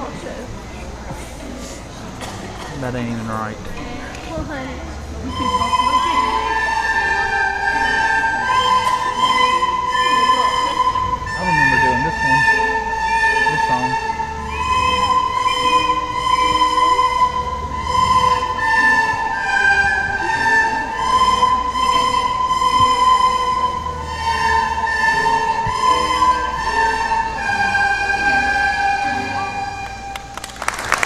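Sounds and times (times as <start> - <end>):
children playing recorders: 5.2 - 30.6.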